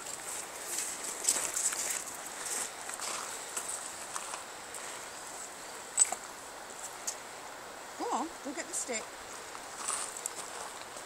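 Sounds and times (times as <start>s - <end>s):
footsteps on gravel: 0.0s - 5.1s, 9.3s - 11.0s
faint steady hiss: 0.0s - 11.0s.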